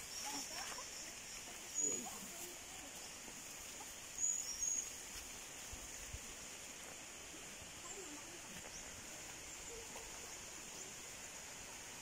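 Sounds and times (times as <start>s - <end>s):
insects droning: 0.0s - 12.0s
bird chirping: 4.1s - 5.0s.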